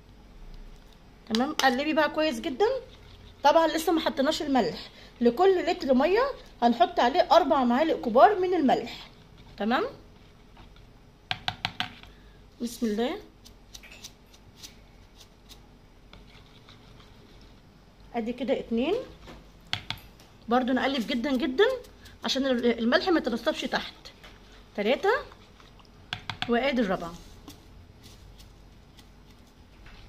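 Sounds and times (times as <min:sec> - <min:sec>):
low room hum: 0:00.0 - 0:30.0
spoon stirring in jug: 0:01.6 - 0:04.6, 0:15.1 - 0:17.7, 0:20.9 - 0:30.0.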